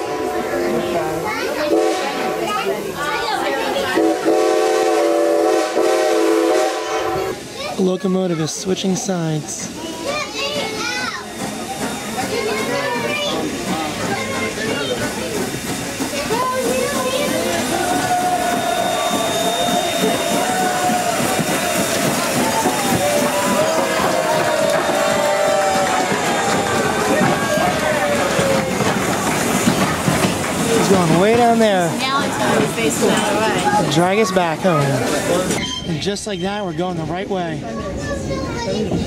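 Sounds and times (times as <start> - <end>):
steam hissing: 0.0 - 36.9
chatter of voices: 0.0 - 39.0
steam locomotive passing: 0.0 - 39.0.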